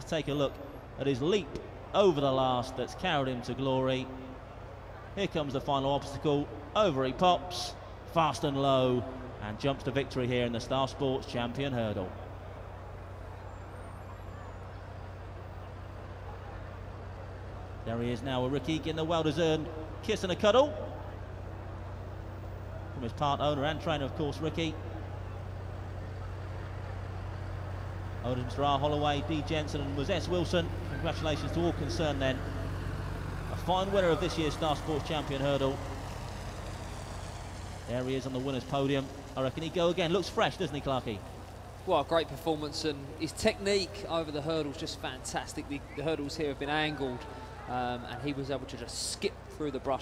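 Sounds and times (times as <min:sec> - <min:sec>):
man talking: 0:00.0 - 0:04.2, 0:05.2 - 0:12.1, 0:17.8 - 0:21.0, 0:23.0 - 0:24.9, 0:28.2 - 0:32.7, 0:33.4 - 0:36.1, 0:37.9 - 0:50.0
constant hum: 0:00.0 - 0:50.0.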